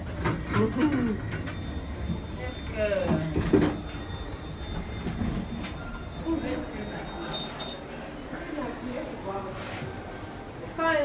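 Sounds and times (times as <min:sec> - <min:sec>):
lift car low rumble: 0:00.0 - 0:10.8.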